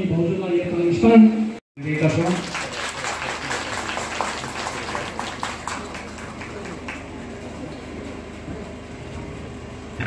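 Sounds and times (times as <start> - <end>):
small audience clapping: 1.8 - 7.9.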